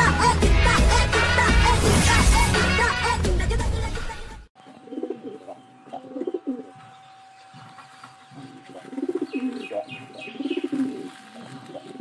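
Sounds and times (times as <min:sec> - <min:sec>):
pigeons cooing: 0:04.7 - 0:12.0.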